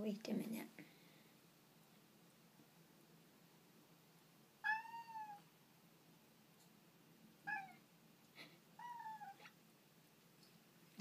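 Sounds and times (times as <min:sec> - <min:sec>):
cat meowing: 0:04.6 - 0:05.5, 0:07.4 - 0:07.9, 0:08.8 - 0:09.5.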